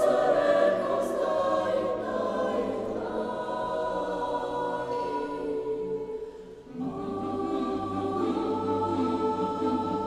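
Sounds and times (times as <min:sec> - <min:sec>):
choir singing a cappella: 0:00.0 - 0:10.0
person breathing: 0:06.1 - 0:06.7.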